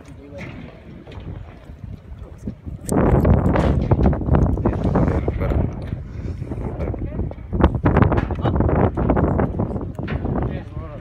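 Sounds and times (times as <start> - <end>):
outdoor background noise: 0.0 - 11.0
microphone rustling and buffeting: 1.2 - 11.0.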